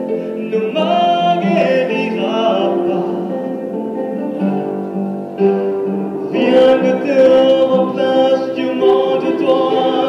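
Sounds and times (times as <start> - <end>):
backing music: 0.0 - 10.0
man singing into a microphone: 0.3 - 3.6, 6.4 - 10.0.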